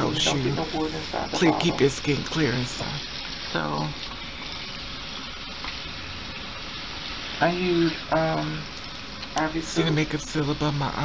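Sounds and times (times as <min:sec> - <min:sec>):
steady hissing noise: 0:00.0 - 0:11.0.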